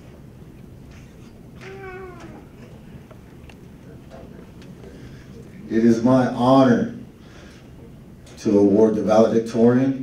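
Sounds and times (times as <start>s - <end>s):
hum of crowd: 0.0s - 9.0s.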